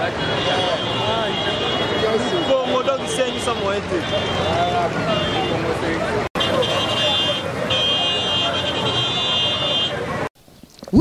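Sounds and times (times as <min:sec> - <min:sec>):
traffic: 0:00.0 - 0:11.0.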